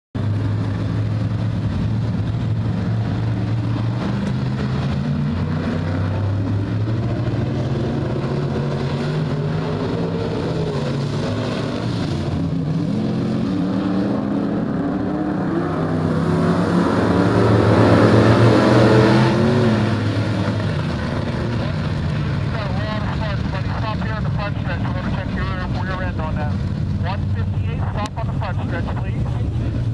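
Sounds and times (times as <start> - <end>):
race car engines: 0.2 - 29.9.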